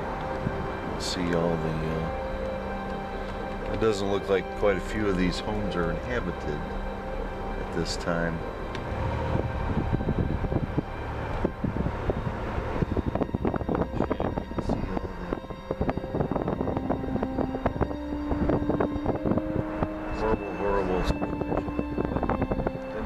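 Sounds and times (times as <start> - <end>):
vehicle engine and road noise: 0.0 - 23.0.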